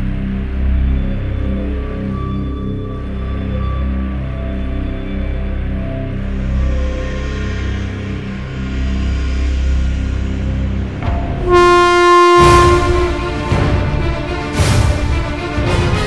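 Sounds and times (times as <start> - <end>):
low sustained drone: 0.0 - 15.7
cinematic hit: 11.0 - 16.0
loud horn-like note: 11.1 - 15.2.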